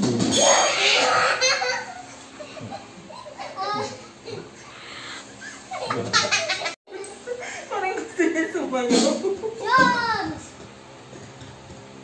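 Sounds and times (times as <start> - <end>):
children laughing and chattering: 0.8 - 8.4, 9.2 - 10.4.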